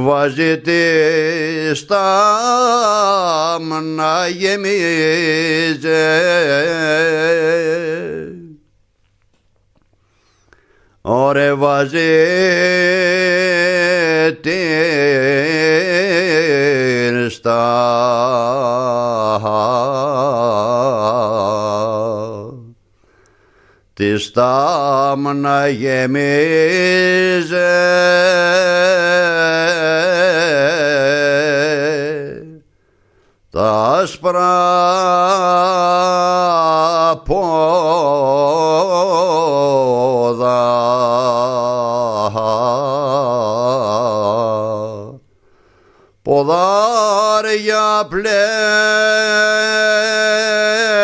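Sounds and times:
man singing folk song: 0.0s - 8.7s, 11.0s - 22.8s, 24.0s - 32.6s, 33.5s - 45.3s, 46.2s - 51.0s.

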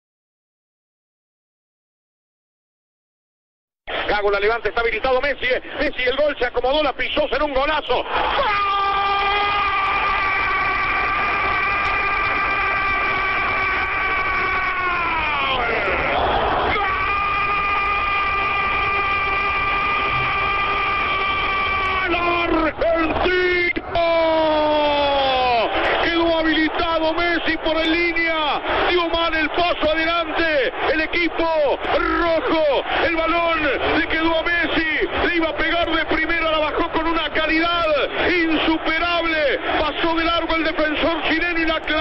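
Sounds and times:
stadium crowd din: 3.9s - 42.0s
commentator shouting goal call: 14.8s - 42.0s.

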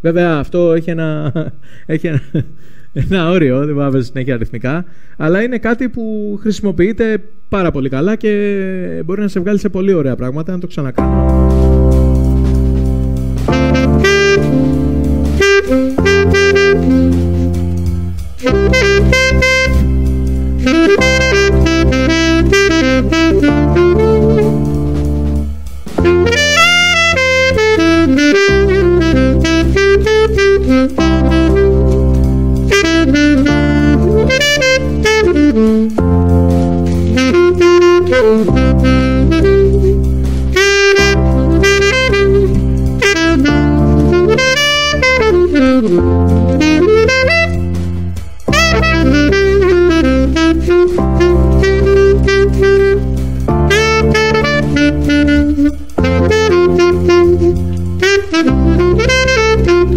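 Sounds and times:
backing track of sustained chords: 11.0s - 59.9s
saxophone improvising jazz: 11.0s - 59.9s.

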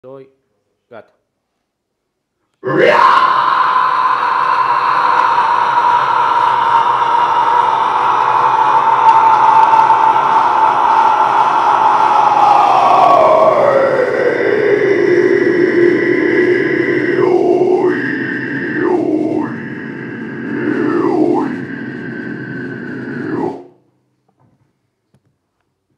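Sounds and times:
metal vocal scream: 2.6s - 23.7s.

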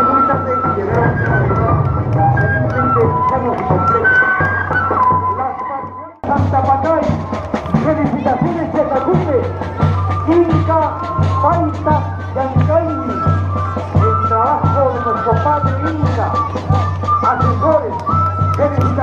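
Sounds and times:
parade band music: 0.0s - 19.0s
voices: 0.0s - 19.0s.

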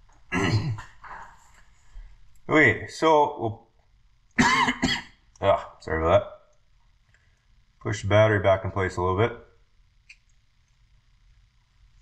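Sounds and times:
man clearing throat: 0.3s - 1.0s, 4.4s - 5.2s.

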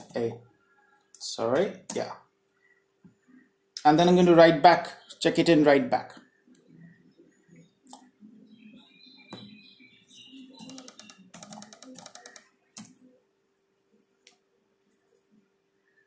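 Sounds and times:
faint steady hum: 0.0s - 16.0s
keyboard typing: 10.4s - 13.1s
mouse clicks: 10.6s - 13.0s.

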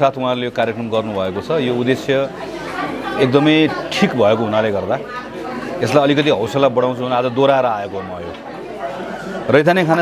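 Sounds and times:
faint voices: 0.0s - 10.0s
man talking: 9.4s - 10.0s.

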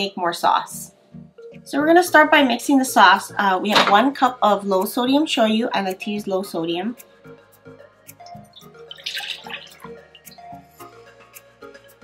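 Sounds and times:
background music: 0.0s - 12.0s
liquid splashing pour into bowl: 8.3s - 10.3s.

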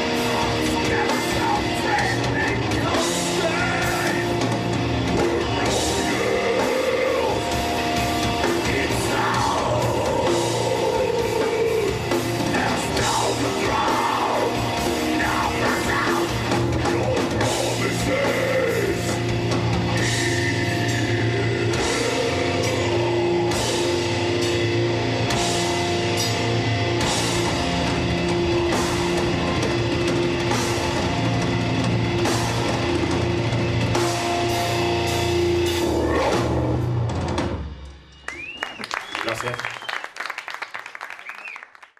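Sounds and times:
metal band playing: 0.0s - 38.0s.

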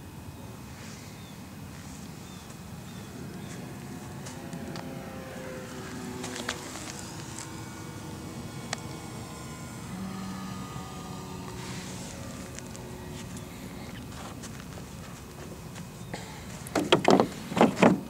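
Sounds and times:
distant engine droning: 0.0s - 18.0s.

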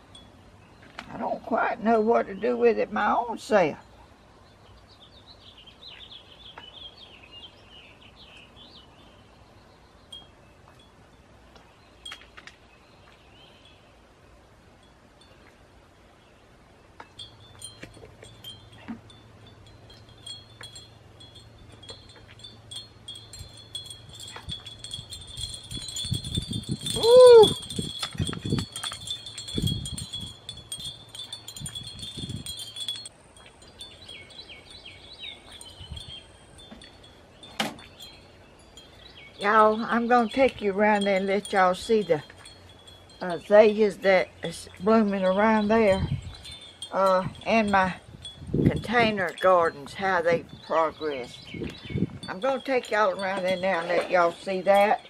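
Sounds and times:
wind chimes ringing: 17.1s - 55.0s.

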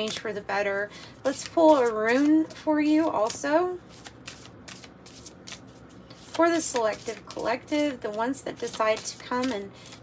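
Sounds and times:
cards being shuffled: 0.0s - 0.4s, 1.2s - 10.0s.

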